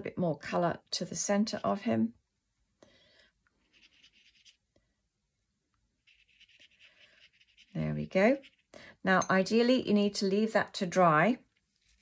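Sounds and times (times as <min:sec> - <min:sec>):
brush bristles on wet paper: 0:01.4 - 0:04.7, 0:05.9 - 0:08.7, 0:11.4 - 0:12.0.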